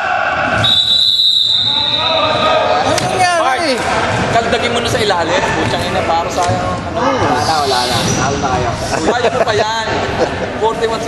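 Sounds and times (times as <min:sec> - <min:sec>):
people talking: 0:01.8 - 0:11.0.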